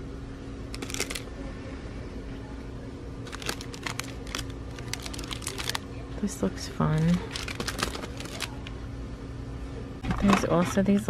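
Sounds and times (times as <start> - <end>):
faint steady hum: 0.0 - 11.0
plastic package crinkling and clicking: 0.8 - 1.2, 3.3 - 5.8, 7.2 - 8.7.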